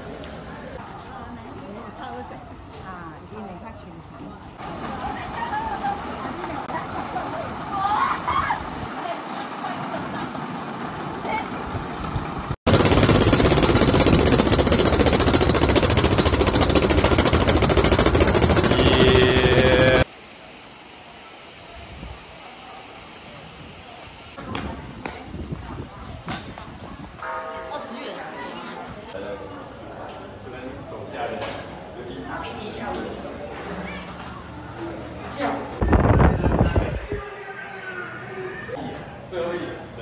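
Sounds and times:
voices: 0:00.0 - 0:12.0, 0:18.6 - 0:20.1.

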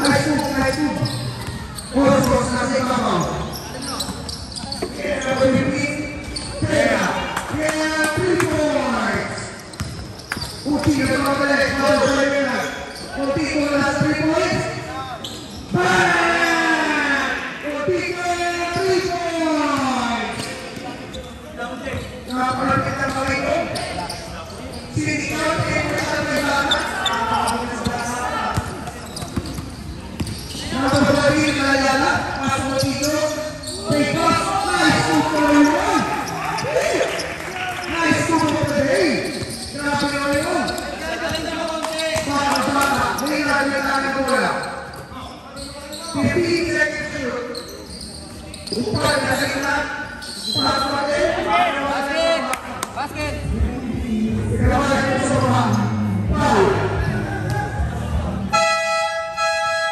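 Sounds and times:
people shouting and talking: 0:00.0 - 0:59.9
basketball bouncing on hard court: 0:08.1 - 0:11.2.

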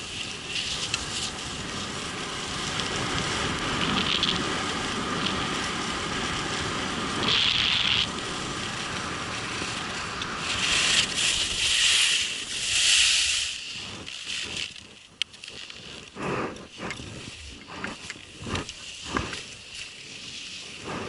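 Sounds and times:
skis scraping over snow: 0:00.0 - 0:21.0
wind rushing over camera: 0:00.0 - 0:21.0.

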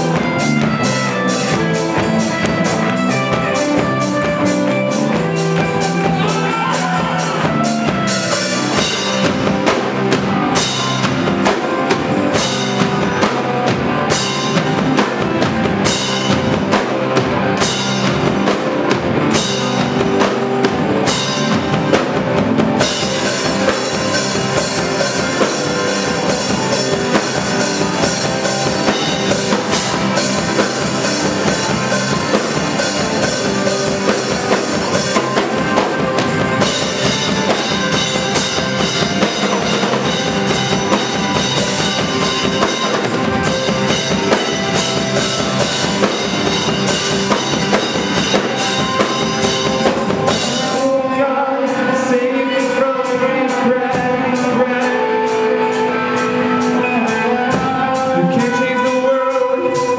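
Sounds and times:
drum kit: 0:00.0 - 0:59.9
electric guitar: 0:00.0 - 0:59.9
rock band playing loud: 0:00.0 - 0:59.9.

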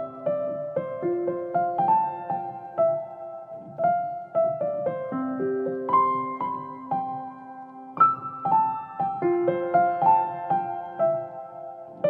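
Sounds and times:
piano melody: 0:00.0 - 0:12.0.

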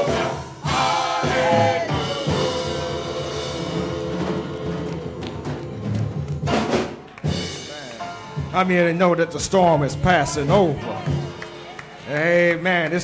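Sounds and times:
drum strokes: 0:00.0 - 0:08.8
sustained keyboard chords: 0:00.0 - 0:13.0.

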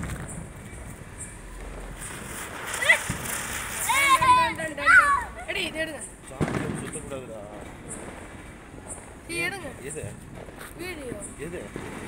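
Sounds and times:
firecracker fizzing hiss: 0:00.0 - 0:12.0
voices shouting excitedly: 0:03.8 - 0:05.7.

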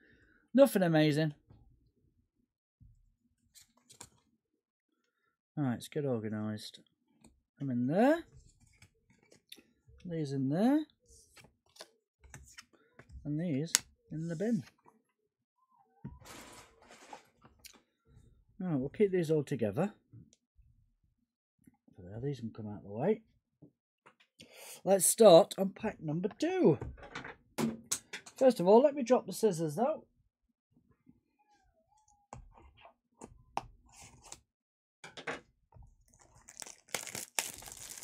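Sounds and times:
cards and packaging rustling: 0:36.1 - 0:38.0.

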